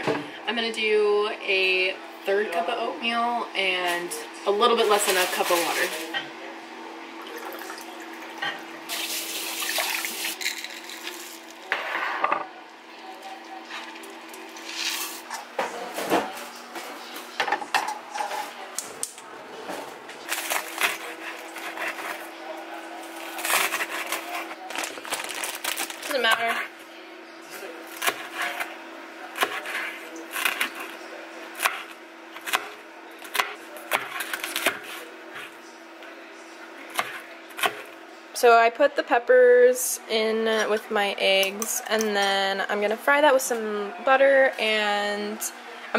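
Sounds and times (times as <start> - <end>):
knife chopping on cutting board: 29.4 - 30.8.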